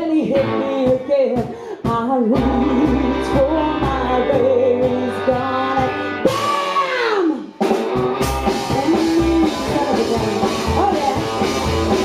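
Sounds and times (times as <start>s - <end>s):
live country band playing: 0.1s - 12.0s.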